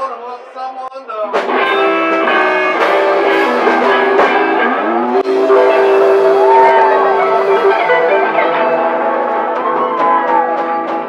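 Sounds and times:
blues band playing: 1.2 - 11.0
blues harmonica: 1.5 - 11.0.

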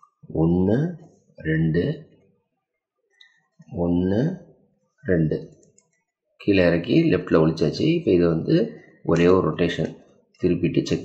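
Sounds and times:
man speaking: 0.2 - 2.1, 3.7 - 5.6, 6.4 - 11.0.

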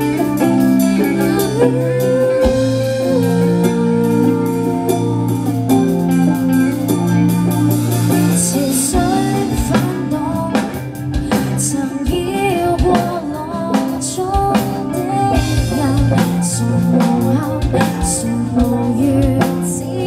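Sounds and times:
electric guitar chords ringing: 0.0 - 20.0
live rock band playing: 0.0 - 20.0
person singing: 0.0 - 20.0.

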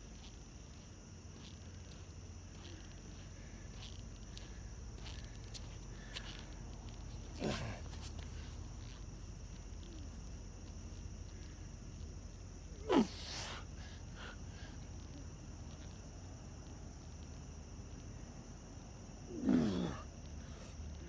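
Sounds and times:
night insects droning: 0.0 - 21.0
man breathing with effort: 2.5 - 8.9, 12.7 - 15.2.

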